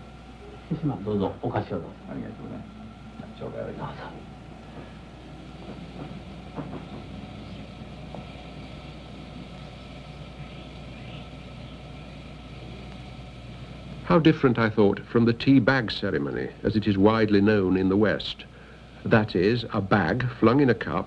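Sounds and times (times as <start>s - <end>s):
kettle simmering: 0.0s - 16.4s.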